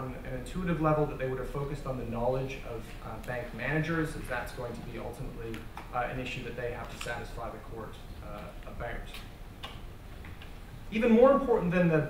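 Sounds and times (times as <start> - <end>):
man speaking: 0.0 - 9.2, 10.9 - 12.0
low room hum: 0.0 - 12.0.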